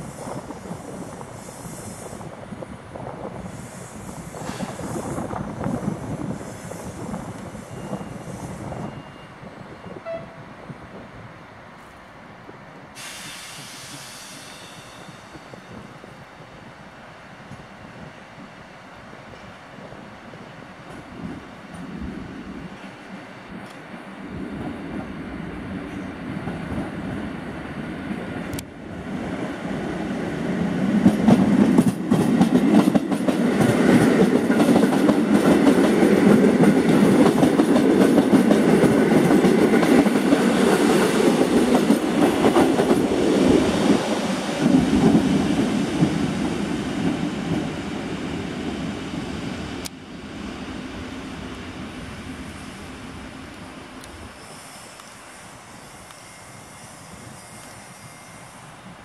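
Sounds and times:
train rumbling past: 0:00.0 - 0:59.0.

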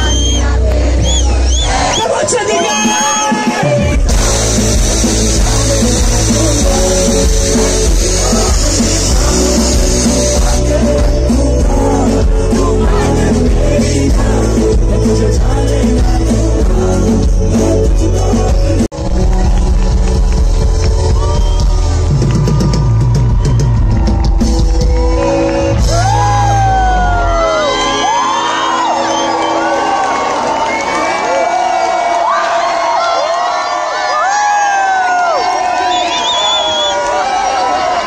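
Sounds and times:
loud music with heavy bass: 0:00.0 - 0:30.4
crowd whooping and yelling: 0:00.0 - 0:38.0.

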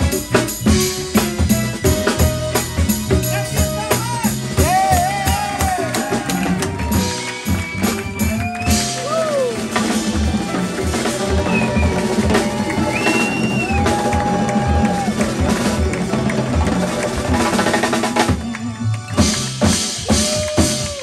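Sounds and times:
jazz band playing live: 0:00.0 - 0:21.0
sharp drum and percussion hits: 0:00.0 - 0:21.0.

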